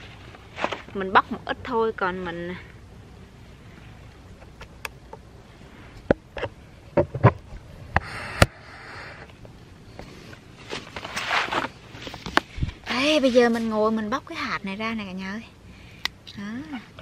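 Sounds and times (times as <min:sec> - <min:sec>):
rustling: 0:00.0 - 0:01.4, 0:09.4 - 0:14.0.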